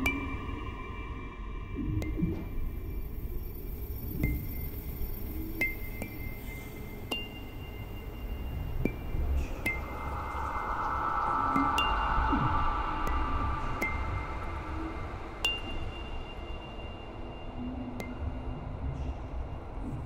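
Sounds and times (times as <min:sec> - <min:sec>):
steady low rumble: 0:08.4 - 0:20.0
high chime-like strikes: 0:09.6 - 0:16.4.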